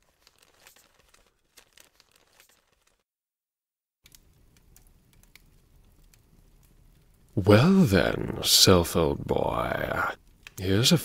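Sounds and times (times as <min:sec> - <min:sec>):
faint crackling and clicks: 0:04.0 - 0:07.4, 0:10.2 - 0:10.7.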